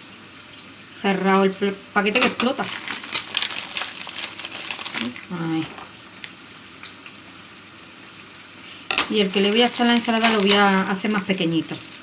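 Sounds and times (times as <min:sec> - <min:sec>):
faint steady hiss: 0:00.0 - 0:12.0
plastic wrappers crinkling: 0:02.2 - 0:06.4, 0:08.9 - 0:12.0.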